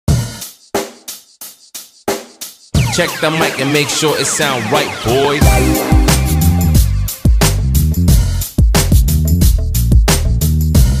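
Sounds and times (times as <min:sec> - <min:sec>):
drum beat of kick and cymbal hits: 0:00.1 - 0:04.6, 0:05.4 - 0:11.0.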